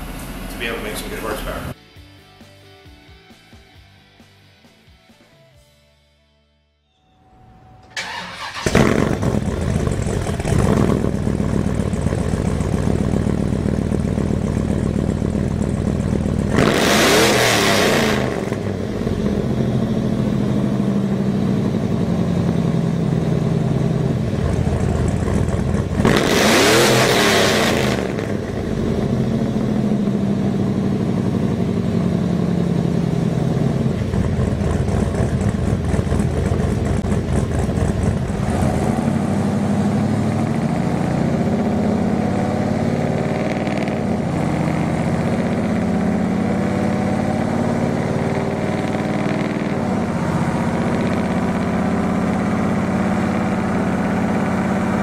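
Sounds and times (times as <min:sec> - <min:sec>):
engine idling and revving: 0:00.0 - 0:01.8, 0:07.9 - 0:55.0.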